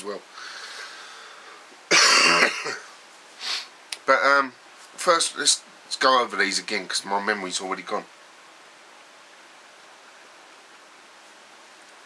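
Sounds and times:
man coughing: 1.9s - 2.9s.

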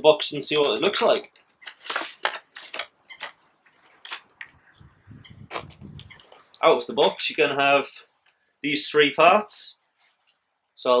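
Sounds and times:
packaging clicks and crackles: 0.5s - 4.5s.

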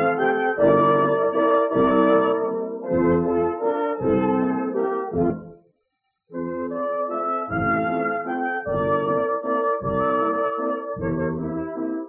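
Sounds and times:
brass band playing a waltz: 0.0s - 5.3s, 6.9s - 12.0s.

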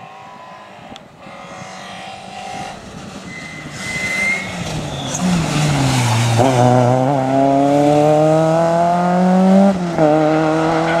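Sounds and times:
rally car engine accelerating: 0.0s - 11.0s.

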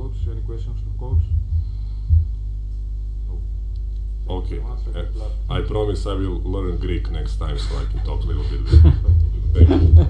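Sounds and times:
low electrical hum: 0.0s - 10.0s
dull thumps on microphone: 1.1s - 2.9s.

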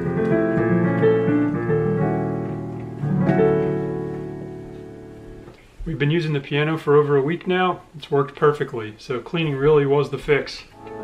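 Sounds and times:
piano chord ringing: 0.0s - 5.5s, 10.8s - 11.0s
man speaking: 5.8s - 10.8s.

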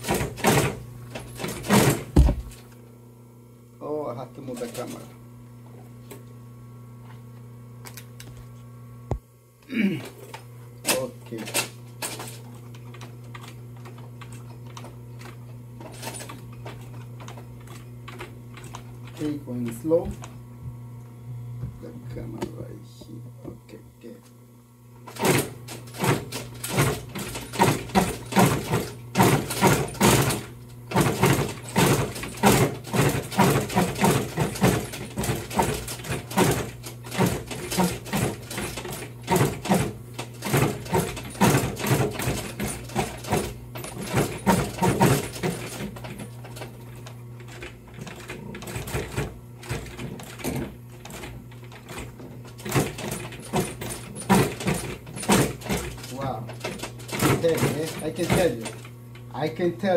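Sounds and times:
sewing machine needle knocking: 0.0s - 0.8s, 25.0s - 46.8s, 47.4s - 58.9s
sewing machine motor hum: 0.0s - 2.8s, 3.8s - 6.3s, 9.1s - 23.6s, 24.9s - 59.9s.

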